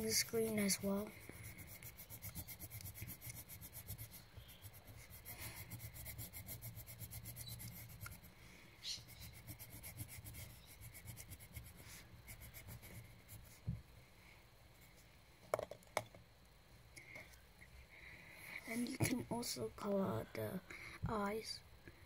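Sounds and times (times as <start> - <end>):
colouring strokes on paper: 0.0 - 8.3, 8.9 - 13.6.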